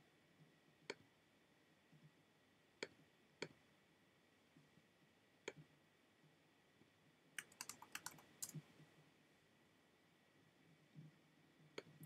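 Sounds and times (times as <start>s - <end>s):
faint keyboard keystrokes: 7.4s - 8.6s.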